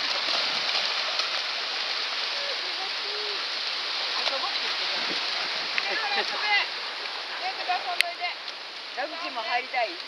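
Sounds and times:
dogs splashing through water: 0:00.0 - 0:02.9
surf washing over sand: 0:00.0 - 0:10.0.

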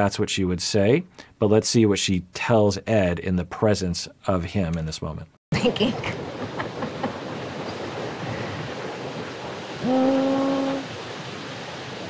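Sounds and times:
wind: 0:05.5 - 0:12.0
surf rushing: 0:05.7 - 0:12.0.

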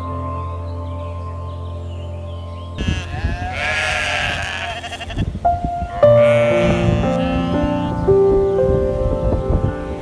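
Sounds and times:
soft background music: 0:00.0 - 0:10.0
farm animal bleating: 0:02.8 - 0:08.1.

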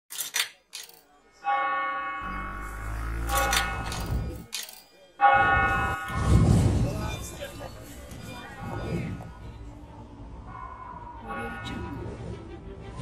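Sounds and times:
bell ringing: 0:01.5 - 0:06.3
low rumble: 0:02.2 - 0:04.5.

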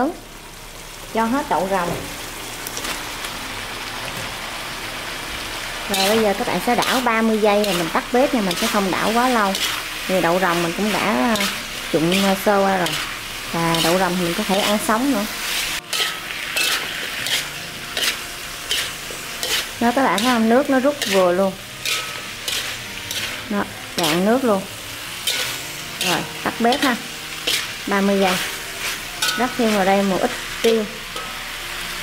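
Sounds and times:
food sizzling in a wok: 0:00.0 - 0:32.0
spatula stirring: 0:05.9 - 0:14.9, 0:15.5 - 0:24.5, 0:25.2 - 0:31.3.

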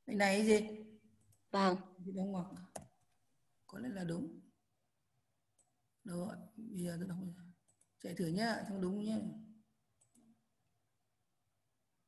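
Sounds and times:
computer mouse click: 0:02.6 - 0:03.2, 0:10.0 - 0:10.4.

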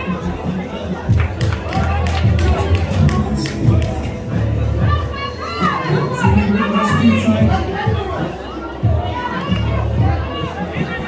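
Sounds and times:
children and spectators calling out: 0:04.8 - 0:11.0.

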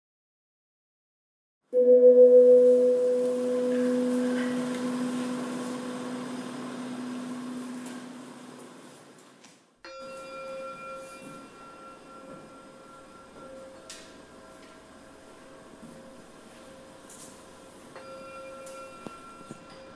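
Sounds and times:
metal singing bowl ringing: 0:01.8 - 0:08.2, 0:09.9 - 0:17.0, 0:17.6 - 0:19.9.

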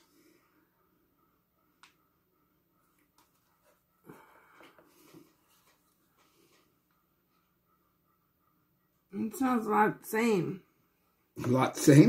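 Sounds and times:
soft faint sounds: 0:00.0 - 0:09.1.

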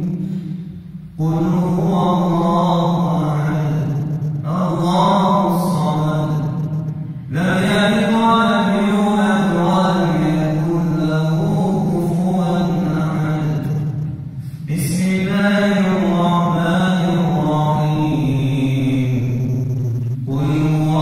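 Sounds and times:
man chanting religious recitation: 0:01.2 - 0:06.6, 0:07.3 - 0:19.4, 0:20.2 - 0:21.0.

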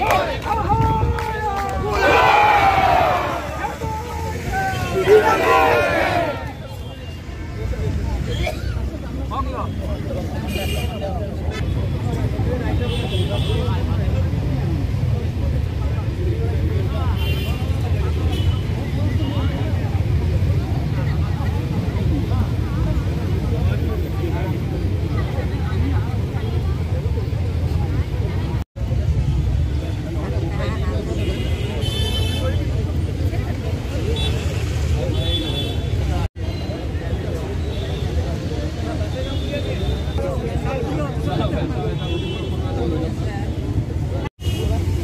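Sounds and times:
babble of large crowd: 0:00.0 - 0:45.0
low rumble of traffic: 0:00.0 - 0:45.0.

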